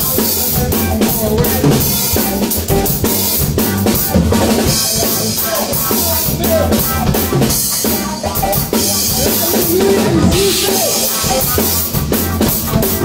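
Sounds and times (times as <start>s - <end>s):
rock band instrumental: 0.0s - 13.0s.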